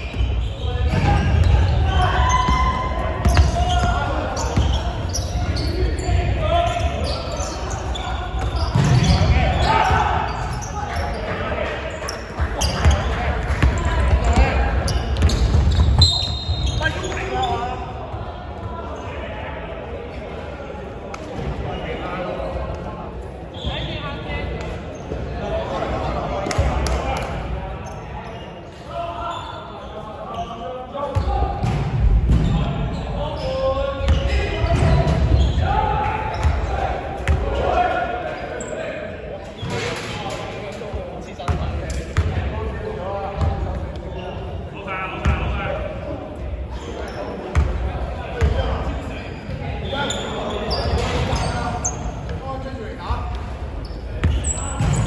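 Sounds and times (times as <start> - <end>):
voices echoing: 0.0 - 55.0.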